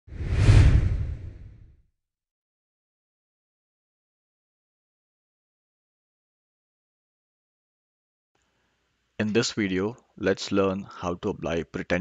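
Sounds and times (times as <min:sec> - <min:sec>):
whoosh: 0:00.1 - 0:01.8.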